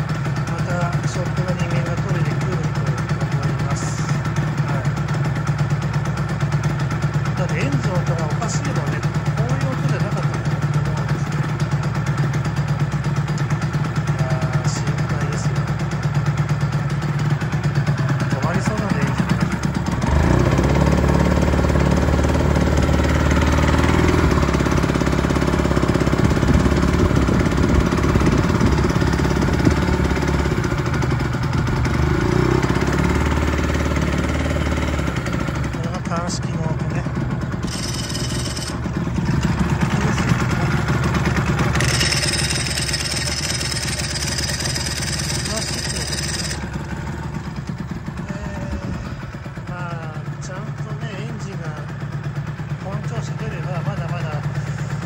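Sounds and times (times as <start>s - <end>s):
two-stroke motorcycle engine running: 0.0s - 55.0s.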